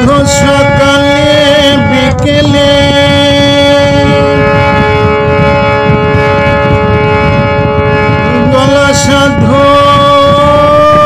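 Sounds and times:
harmonium chord: 0.0 - 11.0
rough low rumble: 0.0 - 11.0.

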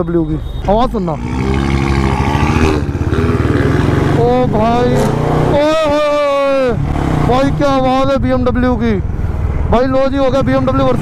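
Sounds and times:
car exhaust: 1.0 - 8.0
motorcycle engine running: 1.2 - 9.1.

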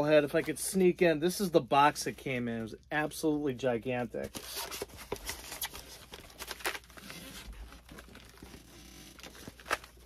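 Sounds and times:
styrofoam rustling and creaking: 4.2 - 10.0.

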